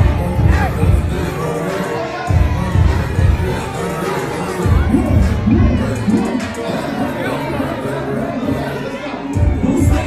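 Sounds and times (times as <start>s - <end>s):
crowd shouting and cheering: 0.0s - 10.0s
rap track with heavy bass beat: 0.0s - 10.0s.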